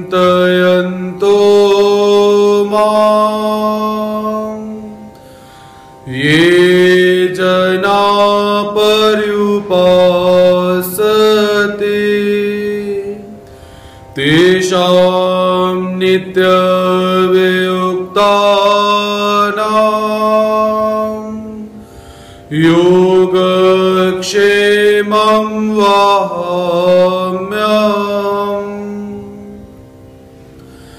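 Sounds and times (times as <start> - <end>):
man chanting: 0.0 - 5.1, 6.1 - 13.4, 14.2 - 21.8, 22.5 - 29.6
steady low drone: 0.0 - 30.9.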